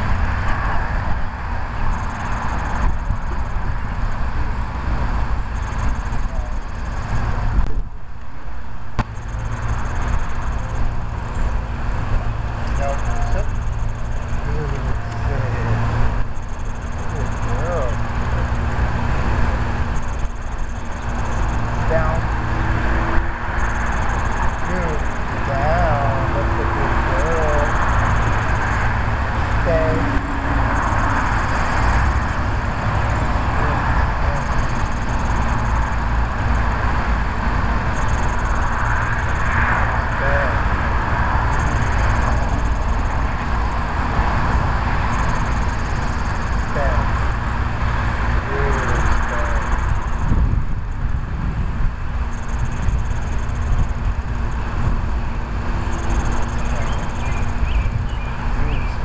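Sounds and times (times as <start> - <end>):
low rumble: 0.0 - 59.0.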